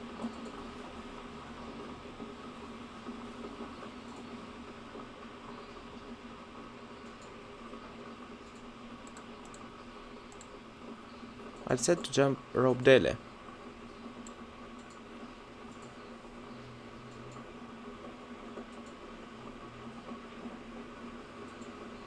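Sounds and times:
room hum: 0:00.0 - 0:22.0
keyboard and mouse clicks: 0:00.2 - 0:00.6, 0:08.4 - 0:09.7, 0:10.3 - 0:10.6, 0:14.2 - 0:15.0, 0:15.7 - 0:16.0, 0:17.1 - 0:17.5, 0:18.6 - 0:19.0.

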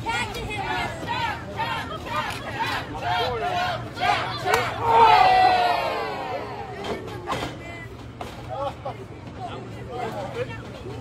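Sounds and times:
crowd shouting: 0:00.0 - 0:07.1.

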